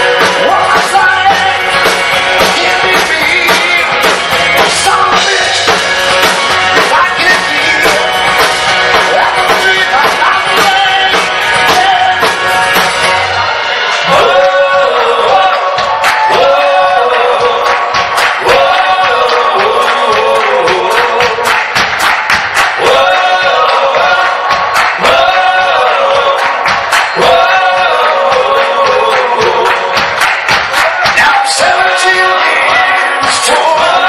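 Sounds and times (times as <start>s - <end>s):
hands clapping a steady beat: 0.0s - 34.0s
voices singing a repeated phrase: 13.3s - 21.6s, 22.8s - 30.2s, 30.9s - 34.0s.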